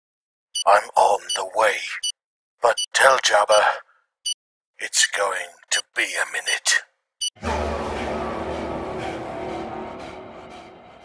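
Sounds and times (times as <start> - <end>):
deep rumbling sound effect: 7.4 - 11.0.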